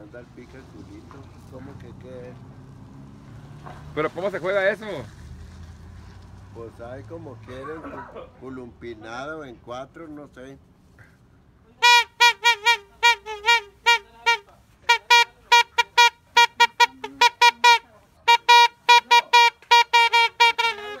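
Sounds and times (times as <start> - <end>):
toy party horn tooting: 11.8 - 21.0.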